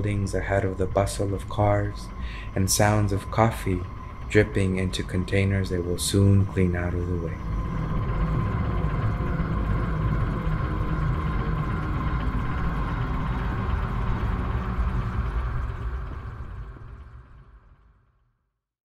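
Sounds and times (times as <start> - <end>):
low rumbling drone: 0.0 - 18.3.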